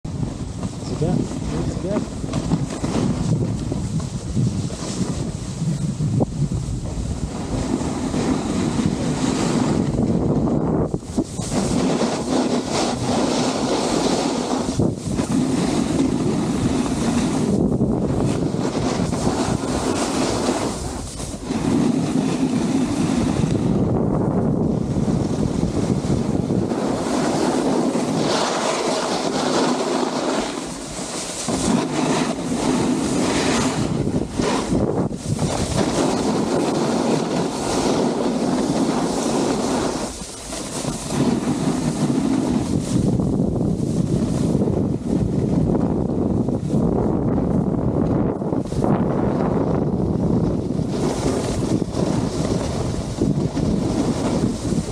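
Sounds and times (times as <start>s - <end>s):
wind noise on microphone: 0.0s - 54.9s
snowboard scraping over snow: 0.1s - 54.9s.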